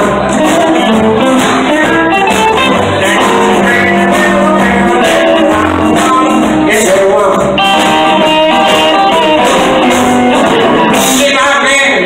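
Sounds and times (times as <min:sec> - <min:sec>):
electric guitar: 0:00.0 - 0:12.0
live band music: 0:00.0 - 0:12.0.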